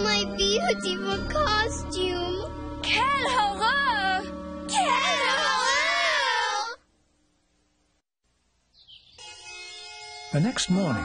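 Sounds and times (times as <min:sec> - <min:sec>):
girl crying: 0:03.0 - 0:06.8.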